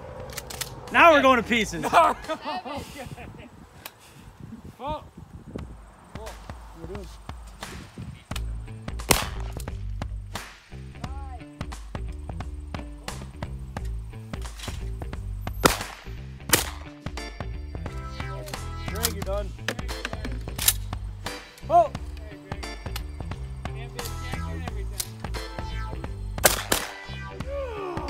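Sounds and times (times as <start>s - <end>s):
background music with bass line: 6.7s - 28.0s
shotgun shots: 9.0s - 9.7s, 15.6s - 16.9s, 26.4s - 27.2s.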